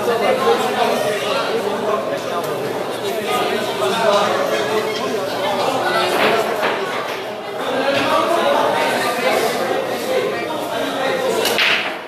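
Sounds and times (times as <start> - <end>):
hall chatter: 0.0 - 12.0
pool balls clattering: 5.9 - 7.4, 11.4 - 12.0.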